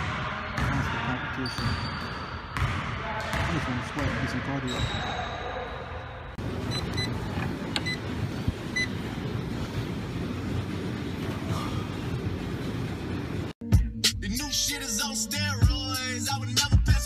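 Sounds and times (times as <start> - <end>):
treadmill belt and motor whir: 6.4 - 13.6
short electronic beeps: 6.7 - 7.2.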